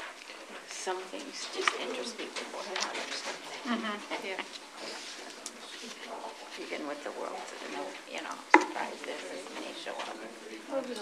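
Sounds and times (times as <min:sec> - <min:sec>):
indistinct talk among people: 0:00.0 - 0:11.0.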